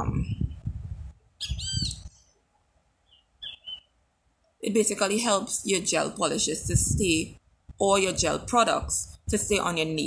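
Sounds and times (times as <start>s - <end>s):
bird chirping: 1.3s - 2.4s, 3.0s - 4.1s.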